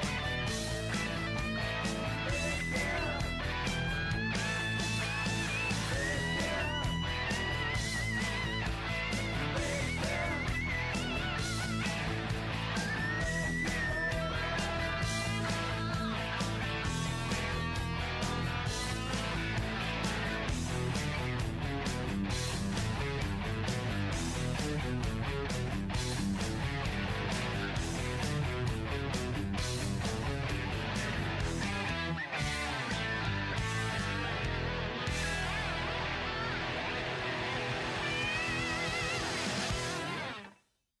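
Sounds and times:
rock music with guitar and drums: 0.0 - 40.6.

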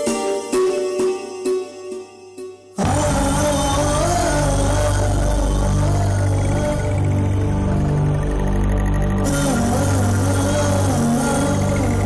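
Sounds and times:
wavering melody line: 0.0 - 12.0
sustained synthesizer chord: 2.7 - 12.0
deep low drone: 2.8 - 12.0.

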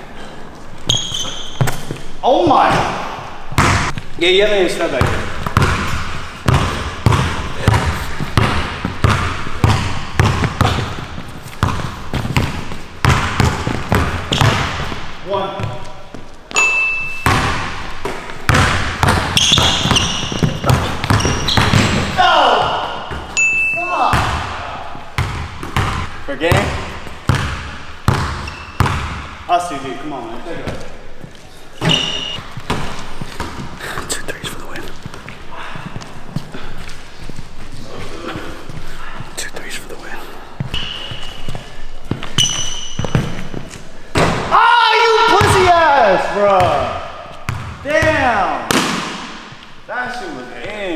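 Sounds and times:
sneaker squeaks: 0.8 - 2.2, 5.0 - 24.3, 28.1 - 29.2, 30.6 - 33.7, 40.6 - 43.8
basketball bouncing on hardwood: 3.6 - 4.0, 5.0 - 15.0, 17.2 - 22.2, 25.2 - 29.2, 47.5 - 48.2.

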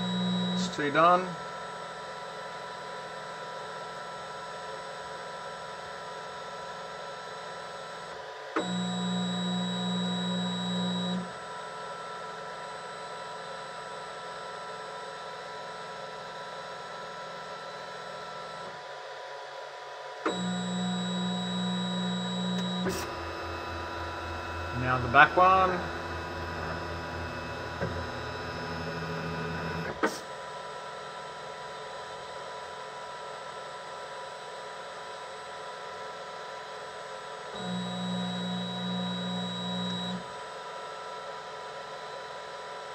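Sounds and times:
stepper motors whining: 20.3 - 30.1.

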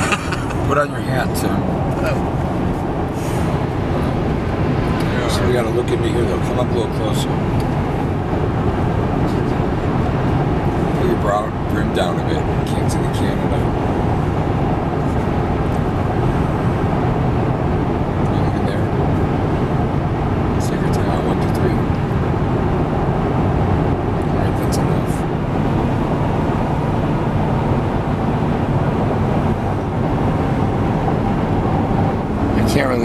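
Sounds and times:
car road and engine noise: 0.0 - 33.0.

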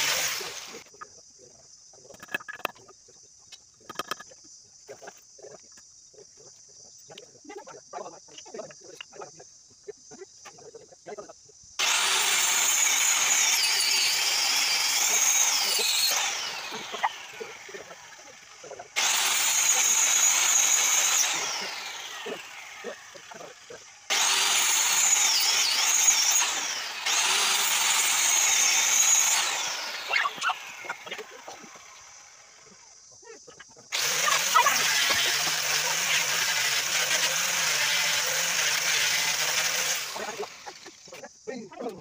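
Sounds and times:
circular saw whining: 0.0 - 1.0, 11.8 - 33.0, 33.9 - 41.1.

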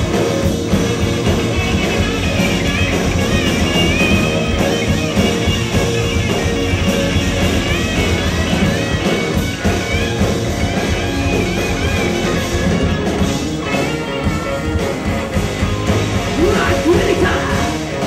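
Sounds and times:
bending lead guitar line: 0.0 - 18.0
punk rock band playing: 0.0 - 18.0.

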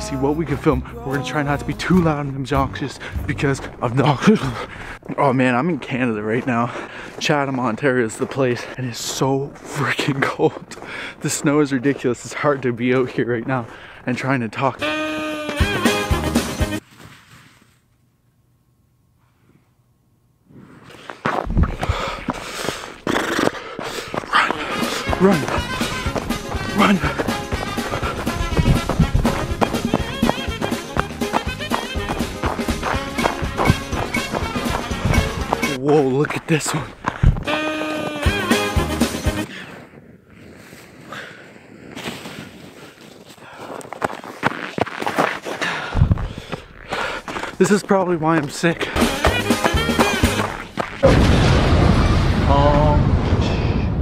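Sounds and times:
snow crunching underfoot: 5.8 - 14.4, 20.6 - 51.0
music with horn-like notes: 14.8 - 16.8, 24.5 - 35.8, 37.4 - 39.5, 48.8 - 50.8
crunching and rustling in snow: 39.6 - 45.6.

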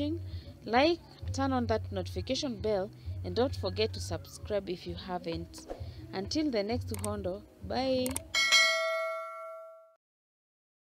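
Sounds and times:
bell chime: 8.4 - 10.0.

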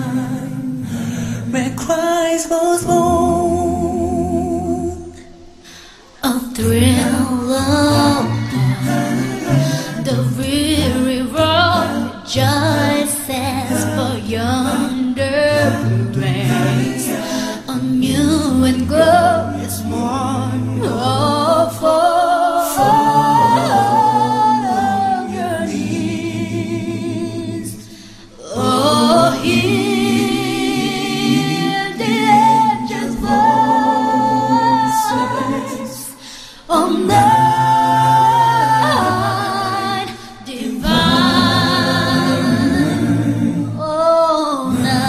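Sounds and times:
a cappella group singing in harmony: 0.0 - 45.0.

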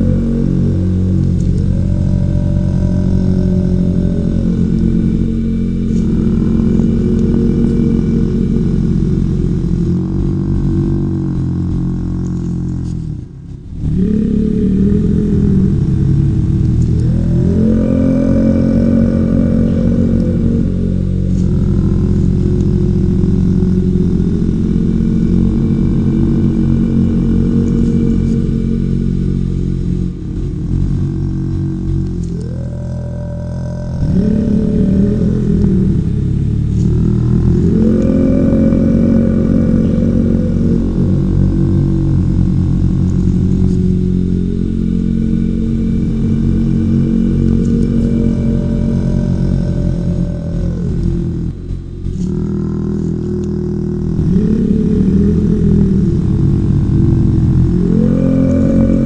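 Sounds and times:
deep droning meditation music: 0.0 - 59.0.

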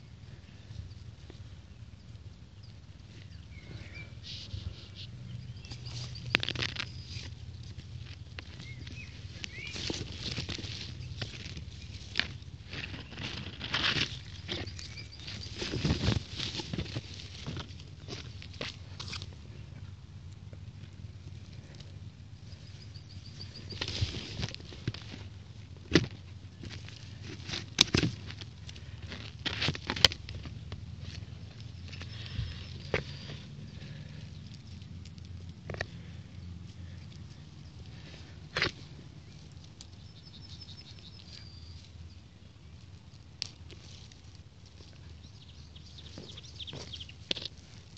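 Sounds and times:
rustling of leaves and grass: 0.0 - 47.9.

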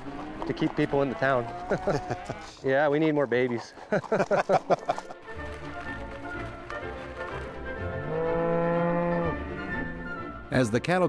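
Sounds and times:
cow mooing: 0.0 - 2.6, 7.8 - 10.2
faint background music: 2.7 - 11.0.

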